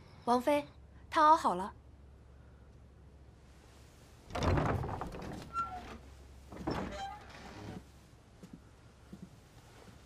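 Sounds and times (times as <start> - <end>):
door squeaks: 4.3 - 7.8
wooden doors scraping open: 4.3 - 7.9.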